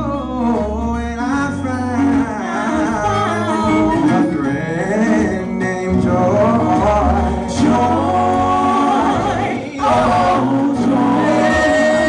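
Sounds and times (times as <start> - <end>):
male vocal group singing harmony: 0.0 - 12.0.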